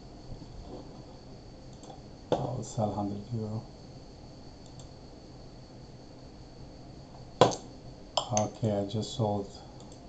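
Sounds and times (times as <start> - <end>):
faint steady hiss: 0.0 - 10.0
thin high whine: 0.0 - 10.0
sharp click: 4.6 - 4.9, 7.4 - 8.6.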